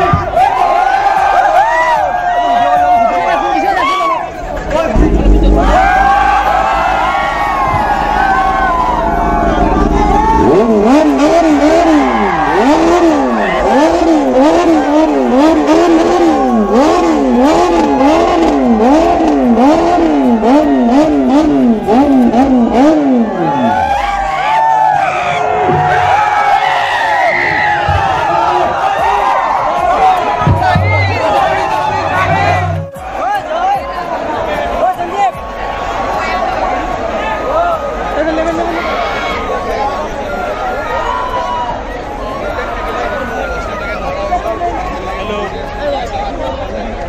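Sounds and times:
crowd cheering and shouting: 0:00.0 - 0:47.0
motorcycle engine revving: 0:04.4 - 0:24.0.

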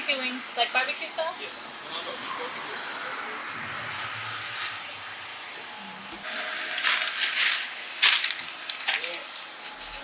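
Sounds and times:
paper bag crinkling: 0:06.6 - 0:10.0.

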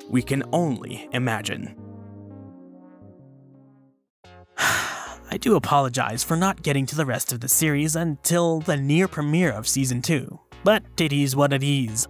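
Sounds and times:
low background music notes: 0:00.0 - 0:12.0
loud sigh-like breath: 0:04.6 - 0:05.3.

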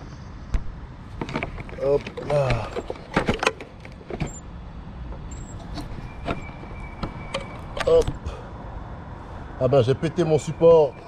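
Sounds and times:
toy truck rolling over cobbles: 0:01.1 - 0:04.3.

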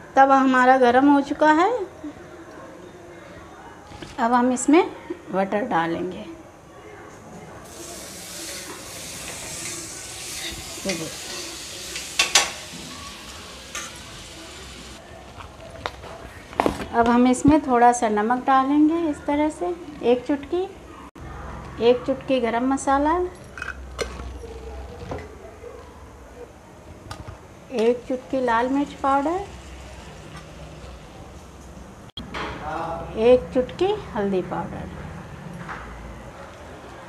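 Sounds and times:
butter sizzling on griddle: 0:07.7 - 0:15.0
spoon scraping griddle: 0:07.7 - 0:15.0.

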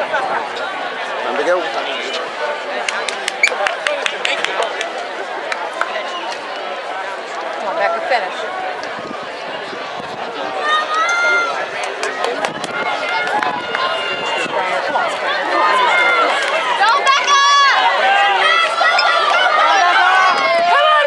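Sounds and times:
crowd shouting and cheering: 0:00.0 - 0:21.0.

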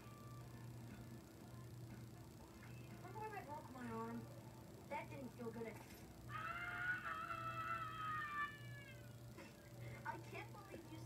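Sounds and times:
boy screaming: 0:06.3 - 0:09.0.

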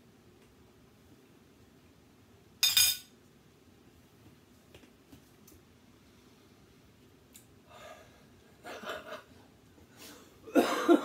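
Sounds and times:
fork clattering on plate: 0:02.6 - 0:03.1.

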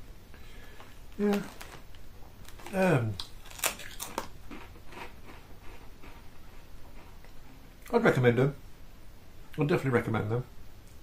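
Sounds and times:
person chewing crunchy crisp: 0:02.4 - 0:07.5.

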